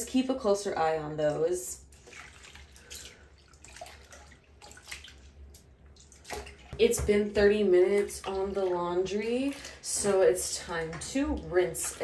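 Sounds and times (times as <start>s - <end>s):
hand sloshing in soapy water: 1.9s - 12.0s.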